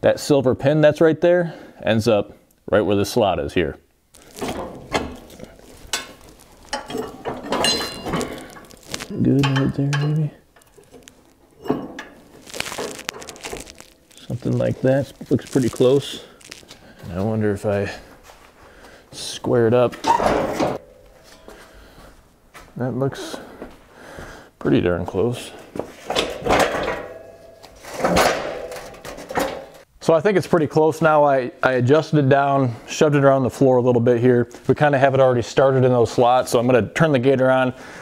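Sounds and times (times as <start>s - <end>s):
metal frame scraping: 4.3s - 9.9s.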